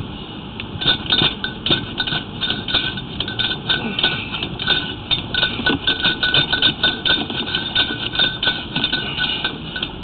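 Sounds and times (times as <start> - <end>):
rapid clicking and clinking: 0.6 - 10.0.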